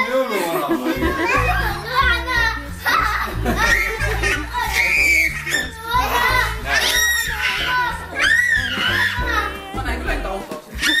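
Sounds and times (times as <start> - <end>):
children calling and chattering: 0.0 - 11.0
music with low bass line: 1.0 - 10.4.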